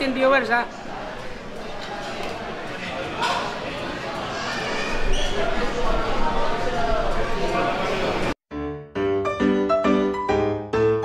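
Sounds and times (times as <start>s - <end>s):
indistinct voices in a hall: 0.0s - 8.4s.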